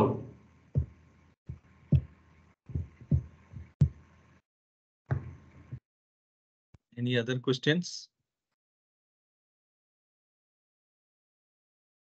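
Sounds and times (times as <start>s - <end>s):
short low thumps: 2.7s - 4.0s.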